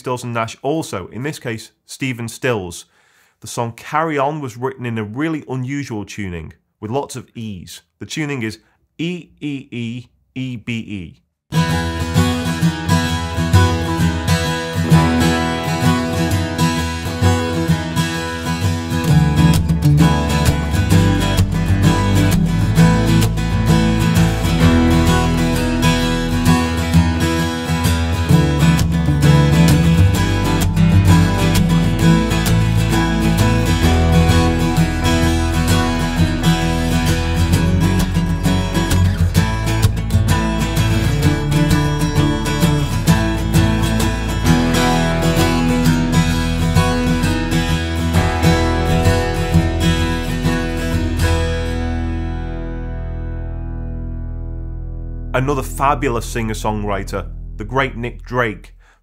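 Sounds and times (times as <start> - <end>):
acoustic guitar playing chords: 9.0 - 58.7.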